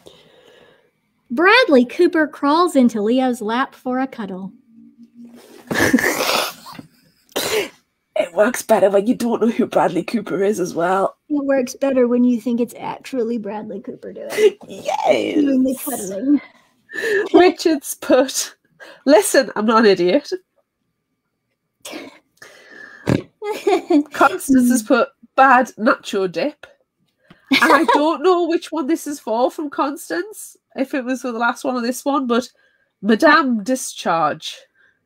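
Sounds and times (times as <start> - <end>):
woman breathing: 0.0 - 1.0, 16.3 - 17.4, 22.4 - 23.2
woman speaking: 1.3 - 4.6, 8.2 - 20.4, 23.4 - 26.7, 27.5 - 34.7
woman laughing breathily: 5.6 - 7.0, 16.9 - 17.4.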